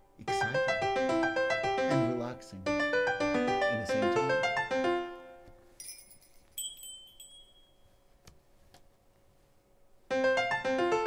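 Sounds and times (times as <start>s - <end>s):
piano notes: 0.0s - 5.8s, 10.1s - 11.0s.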